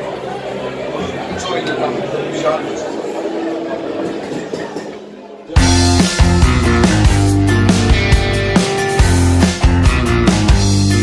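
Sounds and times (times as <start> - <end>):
murmur of voices: 0.0 - 6.3.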